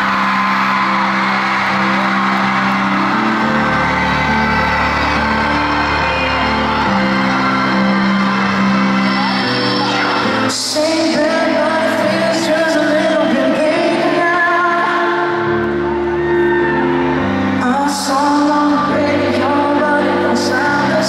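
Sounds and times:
crowd cheering and whooping: 0.0 - 21.0
slow piano chords: 0.0 - 21.0.

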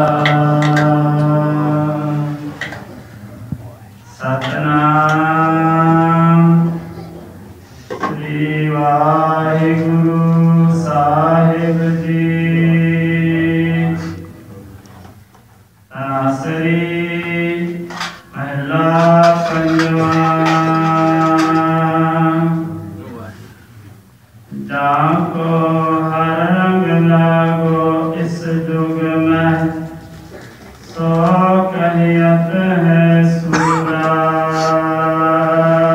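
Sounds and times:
person chanting into a microphone: 0.0 - 14.7, 15.9 - 23.5, 24.5 - 35.9.

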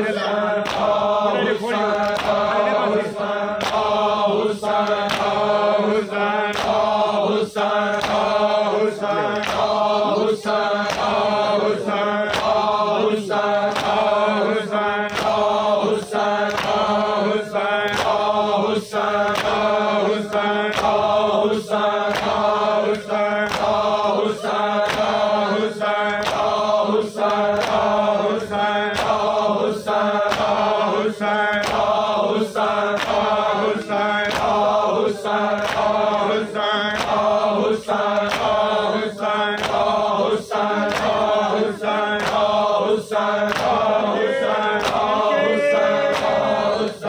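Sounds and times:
men chanting in unison: 0.0 - 47.0
hands beating chests: 0.6 - 3.0, 43.4 - 46.8.

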